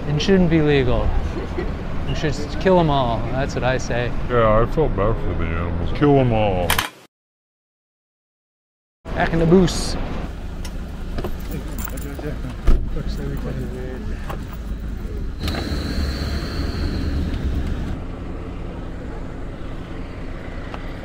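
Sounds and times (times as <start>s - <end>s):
van engine rumble: 9.1s - 21.0s.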